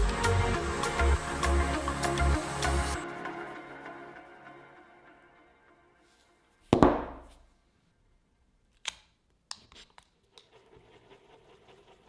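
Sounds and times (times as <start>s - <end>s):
wooden stick scraping glue: 9.6s - 12.0s.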